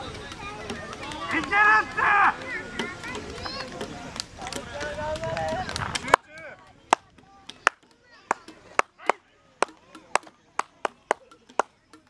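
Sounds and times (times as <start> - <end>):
spectators clapping a beat: 0.8 - 12.0.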